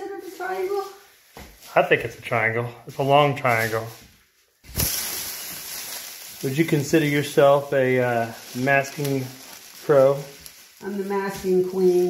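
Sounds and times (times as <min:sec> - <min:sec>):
plastic sheeting crinkling: 0:00.0 - 0:12.0.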